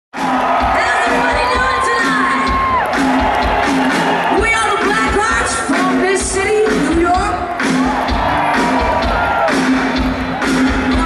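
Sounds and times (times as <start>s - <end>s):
crowd cheering and whooping: 0.2s - 5.5s, 7.4s - 11.0s
live rock band playing: 0.2s - 11.0s.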